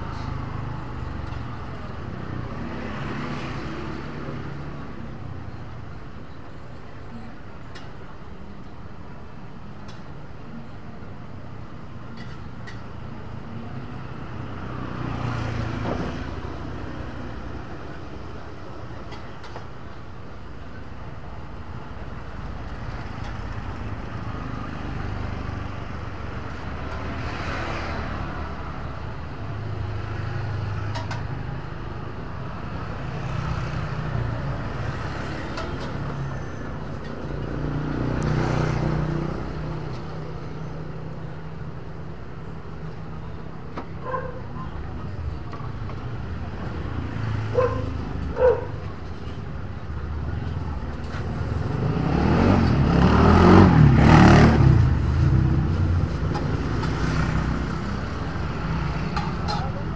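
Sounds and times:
vehicle passing close by: 51.3 - 59.9.

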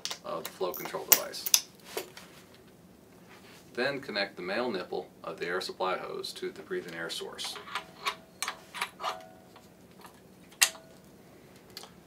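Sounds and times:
metal hose coupling clicking: 7.4 - 11.0.

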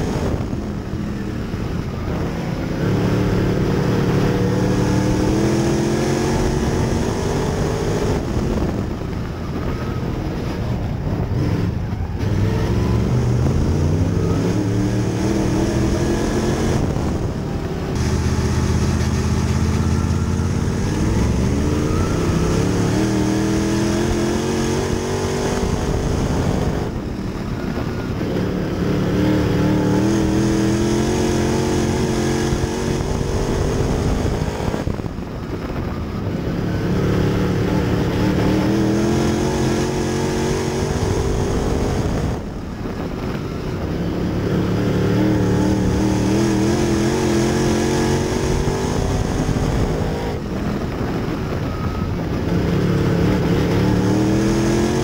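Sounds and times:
race car engine revving: 0.0 - 9.1, 11.1 - 27.1, 27.8 - 55.0.

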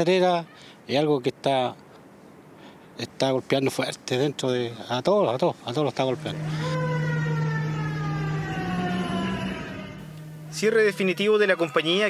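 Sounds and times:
machinery low hum: 6.1 - 11.0
machinery whine falling in pitch: 6.2 - 12.0.

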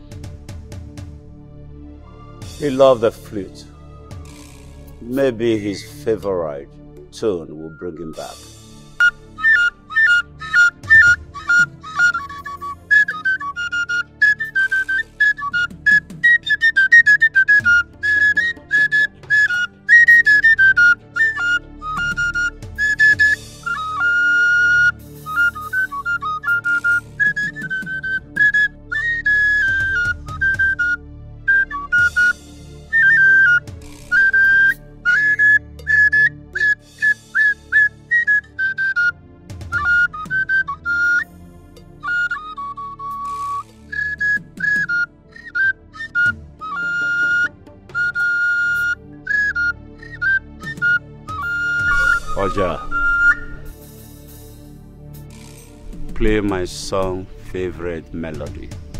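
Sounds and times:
flute playing lively melody: 2.6 - 6.3, 7.2 - 41.4, 42.0 - 53.9.

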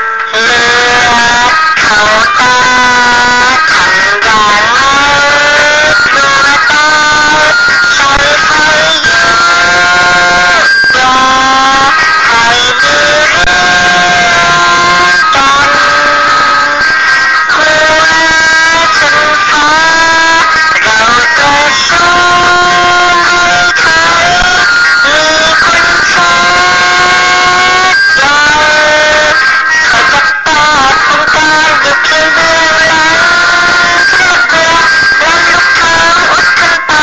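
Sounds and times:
guitar backing: 0.0 - 37.0
processed vocal singing: 0.0 - 37.0.

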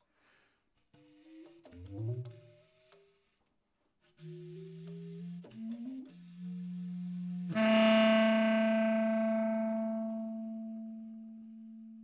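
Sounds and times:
bass clarinet low note: 4.2 - 12.0.

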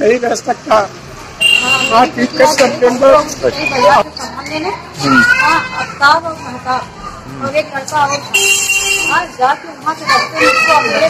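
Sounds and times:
children talking: 1.4 - 11.0.

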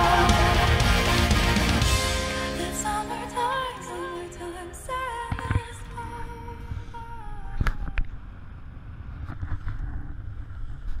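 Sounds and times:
wind rumbling on microphone: 5.3 - 11.0.

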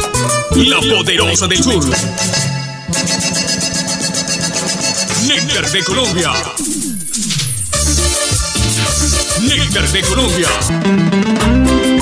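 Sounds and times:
instrumental music with fast beat: 0.0 - 12.0.

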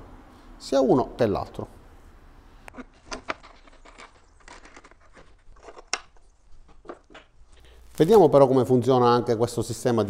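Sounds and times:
wooden parts clicking and tapping: 2.7 - 7.4.

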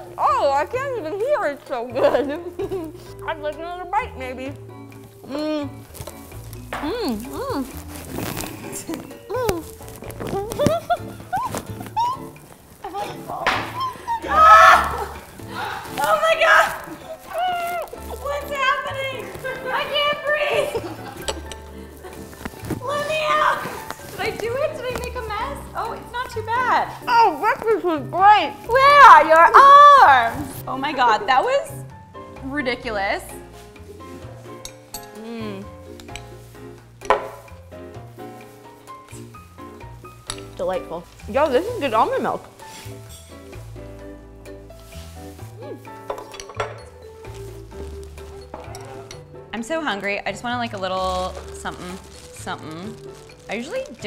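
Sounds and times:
light background music: 0.0 - 54.0
women laughing: 2.0 - 3.0, 10.4 - 15.9, 20.3 - 22.4
metal spoon clinking ceramic bowl: 46.1 - 47.0.

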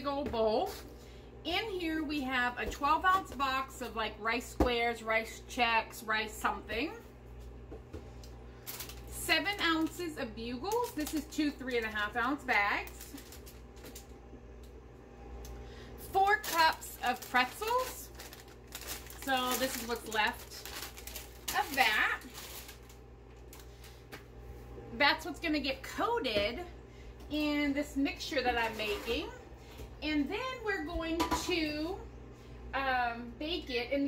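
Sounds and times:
low steady hum: 0.0 - 34.0
plastic bags crinkling: 8.6 - 14.1, 16.0 - 24.1.

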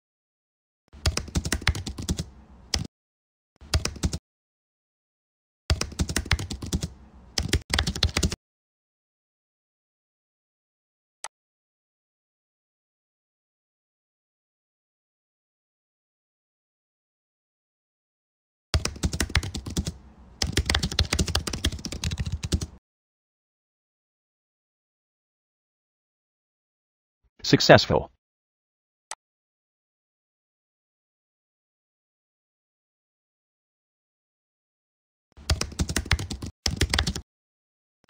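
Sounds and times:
typing on computer keyboard: 1.0 - 2.9, 3.6 - 4.2, 5.7 - 8.4, 18.8 - 22.8, 35.4 - 37.2.

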